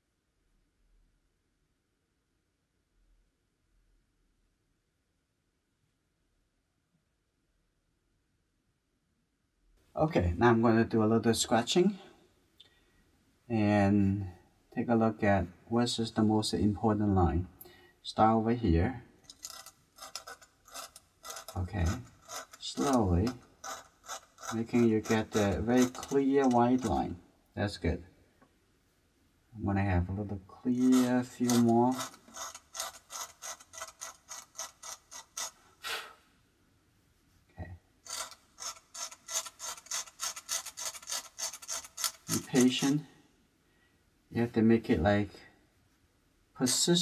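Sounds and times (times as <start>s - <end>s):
tool scratching paper: 19.3s - 27.0s, 30.7s - 35.6s, 38.0s - 43.0s.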